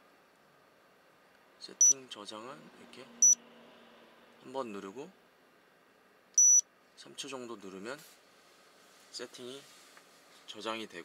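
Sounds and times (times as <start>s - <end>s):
short high-pitched beep: 6.4s - 6.6s.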